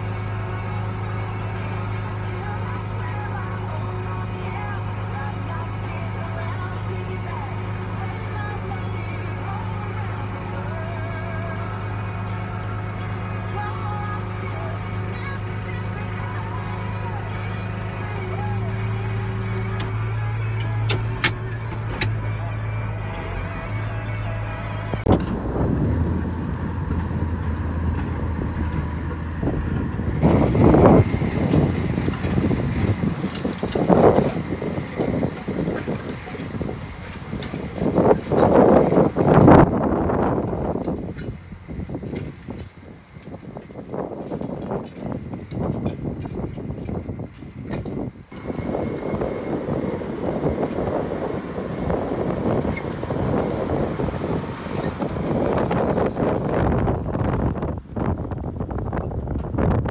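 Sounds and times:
tractor engine droning: 0:00.0 - 0:59.9
wind gusting on microphone: 0:25.0 - 0:59.9.

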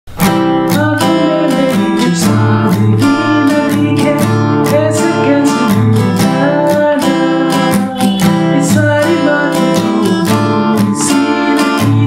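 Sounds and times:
acoustic guitar strumming: 0:00.1 - 0:12.0.

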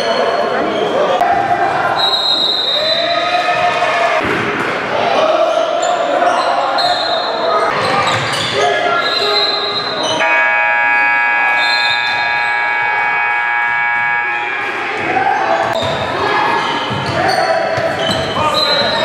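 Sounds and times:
sneakers squeaking on floor: 0:00.0 - 0:01.2, 0:05.4 - 0:10.3, 0:11.5 - 0:12.9, 0:14.0 - 0:19.0
players' voices: 0:00.0 - 0:19.0
scoreboard buzzer held tone: 0:10.2 - 0:14.5.

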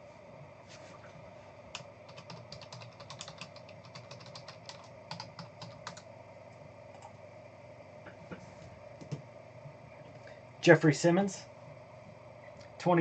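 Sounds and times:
computer keyboard typing: 0:01.7 - 0:06.1, 0:06.9 - 0:07.2.

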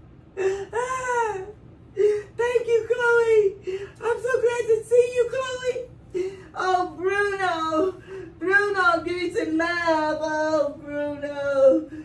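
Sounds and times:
woman crying and wailing: 0:00.4 - 0:12.0.

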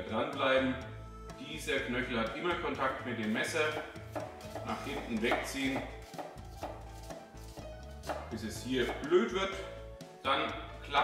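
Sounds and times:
knife dicing onion on wooden board: 0:03.7 - 0:09.1.

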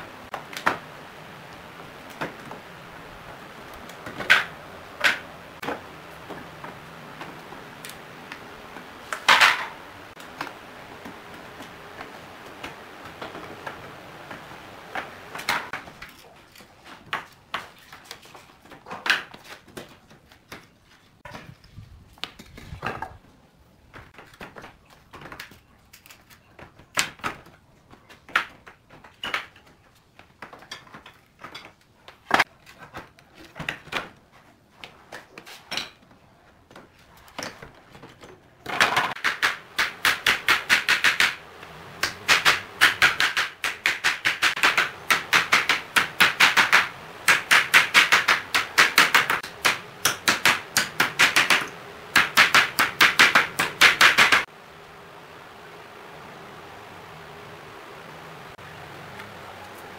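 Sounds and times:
hammer striking nails into wood: 0:38.7 - 0:41.4, 0:42.0 - 0:54.4.

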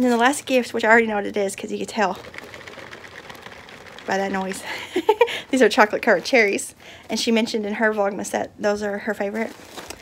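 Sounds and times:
candies rattling in a box: 0:00.0 - 0:07.3, 0:09.4 - 0:10.0.

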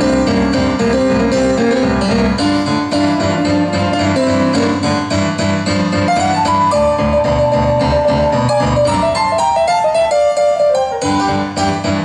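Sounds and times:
blues piano through speakers: 0:00.0 - 0:12.0.

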